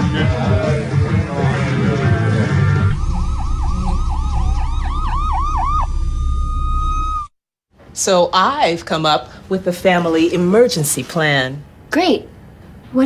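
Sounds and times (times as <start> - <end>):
music: 0.0 - 4.0
siren yelping: 2.7 - 7.3
low rumble: 2.8 - 7.3.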